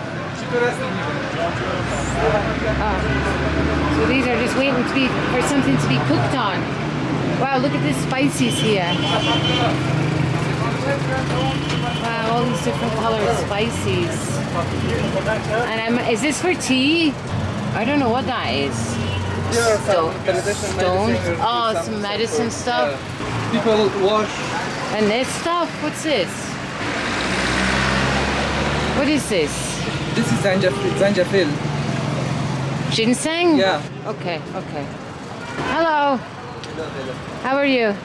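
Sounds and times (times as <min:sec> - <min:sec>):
idling vehicle engines and traffic: 0:00.0 - 0:38.0
people talking: 0:00.4 - 0:03.2, 0:03.9 - 0:06.7, 0:07.4 - 0:09.8, 0:10.6 - 0:26.6, 0:29.0 - 0:31.6.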